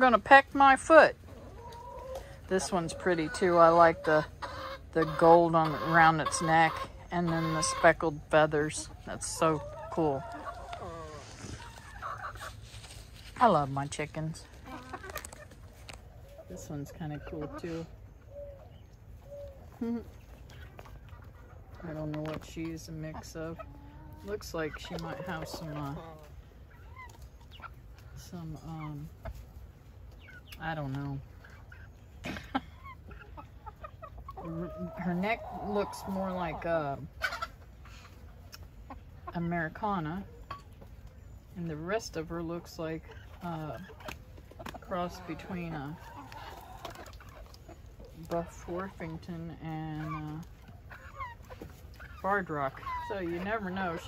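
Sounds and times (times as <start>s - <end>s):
chicken calls: 0.0s - 54.0s
chickens clucking: 0.0s - 54.0s.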